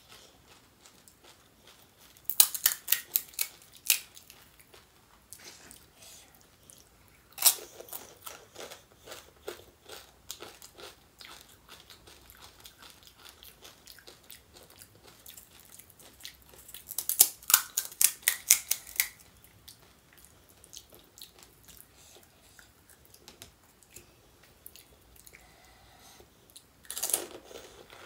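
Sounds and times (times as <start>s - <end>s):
chewing crisp food: 0.0s - 5.9s, 6.6s - 25.7s.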